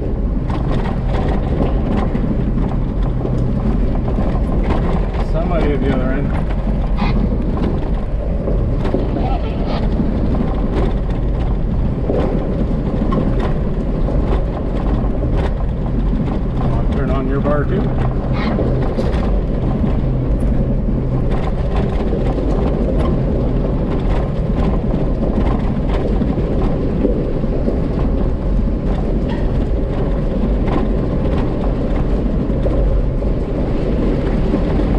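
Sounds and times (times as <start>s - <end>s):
engine and tyre drone: 0.0s - 34.9s
gravel clicks and rattles: 0.0s - 34.9s.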